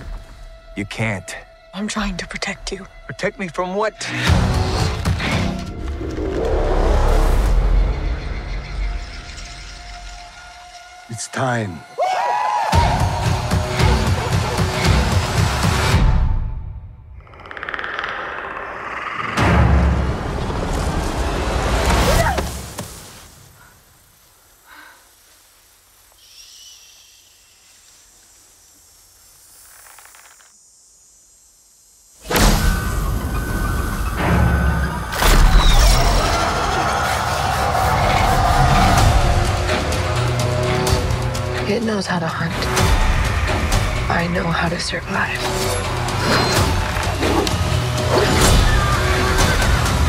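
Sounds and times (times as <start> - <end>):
low even hiss in grass: 22.4 - 32.2.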